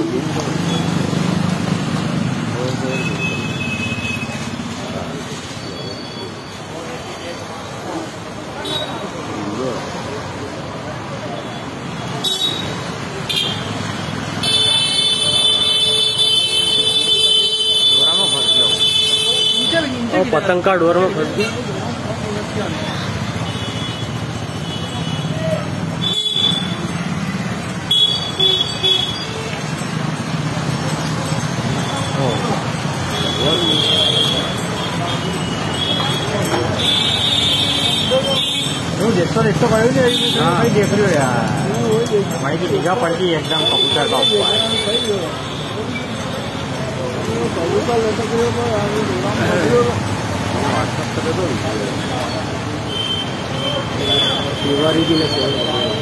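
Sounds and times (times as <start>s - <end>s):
people talking: 0.0s - 16.3s, 17.7s - 56.0s
street noise: 0.0s - 56.0s
traffic: 0.0s - 56.0s.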